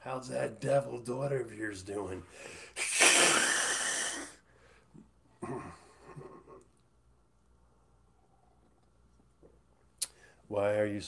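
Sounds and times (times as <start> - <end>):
man snorting laugh: 5.4 - 6.7
man wheezing laughter: 5.4 - 6.7.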